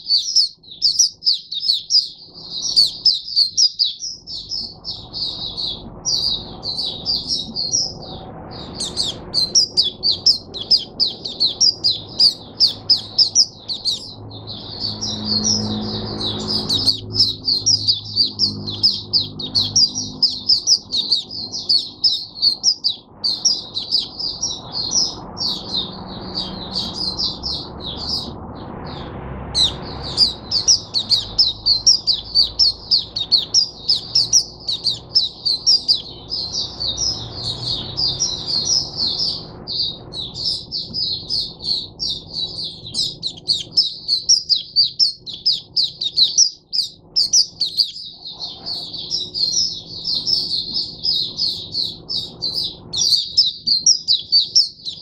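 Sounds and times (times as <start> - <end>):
bird twittering song: 0.0 - 55.0.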